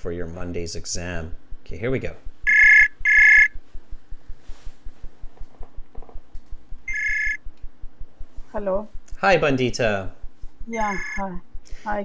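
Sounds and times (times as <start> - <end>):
electronic call ringing tone: 2.5 - 3.6, 6.9 - 7.4, 10.7 - 11.3.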